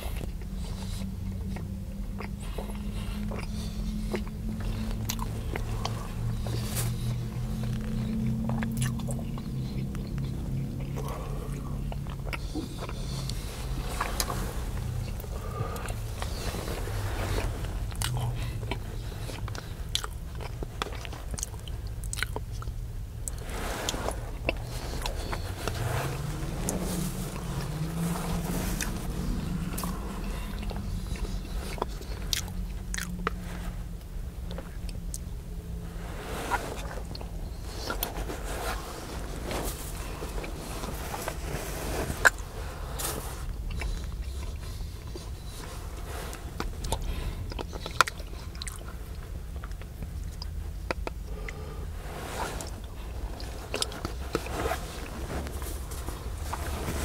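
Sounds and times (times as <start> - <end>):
person chewing soup: 0.0 - 35.8, 36.5 - 57.0
low rumble: 0.0 - 57.0.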